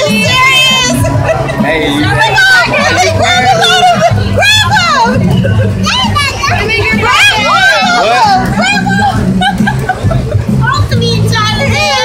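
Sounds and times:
background music: 0.0 - 12.0
children squealing and shouting: 2.2 - 9.2.

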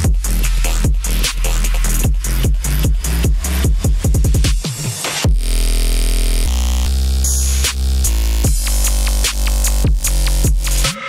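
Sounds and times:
buzzing synth bass note: 5.3 - 10.9.

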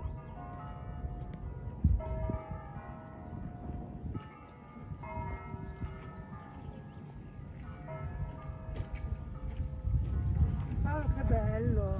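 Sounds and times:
distant church bells pealing: 0.0 - 11.8.

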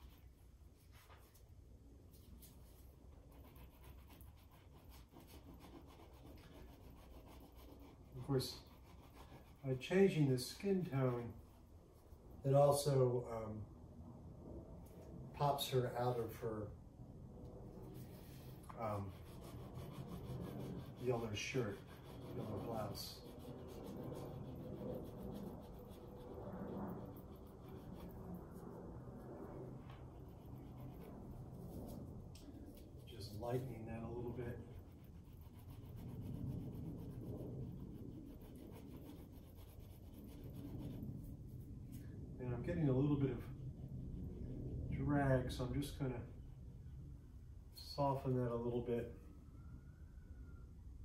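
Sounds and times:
paint stick scratching on paper: 3.2 - 10.2, 17.8 - 28.7, 29.8 - 41.6.

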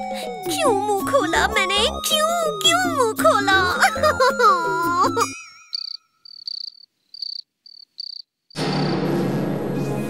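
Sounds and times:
background music: 0.0 - 5.7, 8.6 - 10.0
crickets chirping: 5.7 - 8.9.

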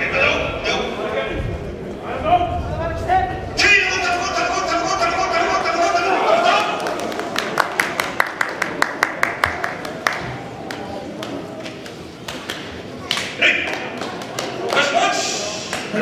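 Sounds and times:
hand clapping: 6.6 - 15.0, 15.7 - 15.9.

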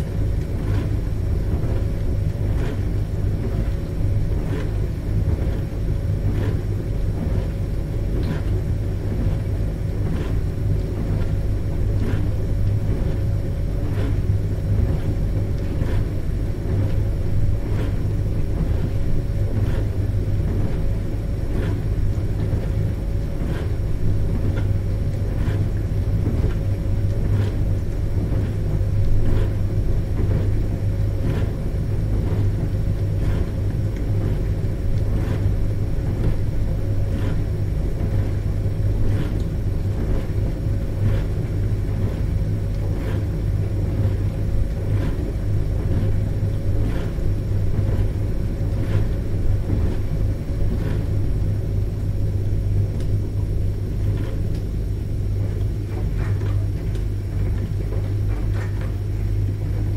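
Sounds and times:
dishwasher motor hum: 0.0 - 59.9.

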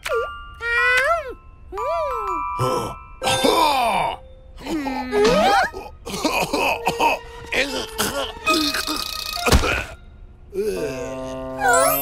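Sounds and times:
background music: 0.0 - 12.0
cartoon character vocal sounds: 10.6 - 12.0.

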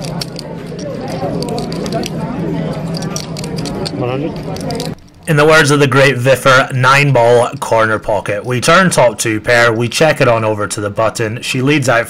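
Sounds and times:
poker chips clicking: 0.0 - 5.3
many voices chattering: 0.0 - 12.0.

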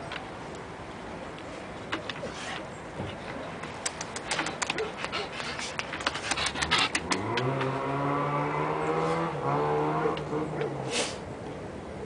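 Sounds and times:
sharp clicks: 3.7 - 4.8
vehicle engine droning: 5.8 - 12.0.

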